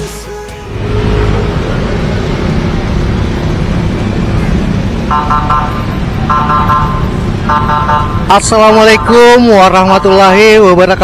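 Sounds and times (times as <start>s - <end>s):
motorcycles and cars passing: 0.6s - 11.0s
pitched beeps: 5.1s - 10.5s.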